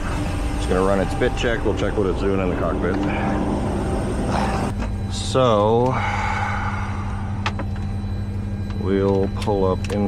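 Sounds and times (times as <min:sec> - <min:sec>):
low hum of aircraft systems: 0:00.0 - 0:10.0.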